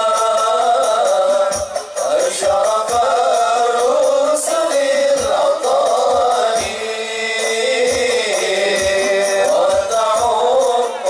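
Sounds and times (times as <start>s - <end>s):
frame drum beats: 0.0s - 11.0s
men singing devotional chant: 0.0s - 11.0s.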